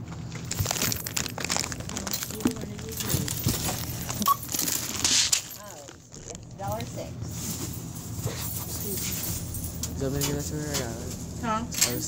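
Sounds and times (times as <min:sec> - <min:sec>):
barcode scanner beep: 0:04.2 - 0:04.5.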